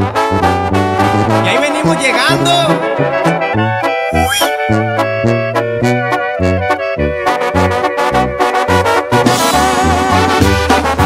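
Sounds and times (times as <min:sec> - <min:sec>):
trumpets and trombones: 0:00.0 - 0:11.0
tuba bass line: 0:00.0 - 0:11.0.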